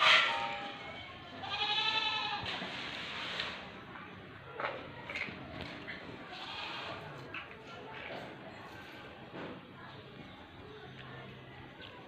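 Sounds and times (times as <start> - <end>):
goat bleating: 1.4 - 2.5, 6.3 - 7.1.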